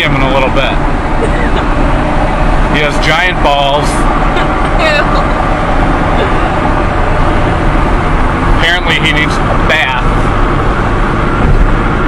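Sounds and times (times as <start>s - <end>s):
car interior road and wind noise: 0.0s - 12.0s.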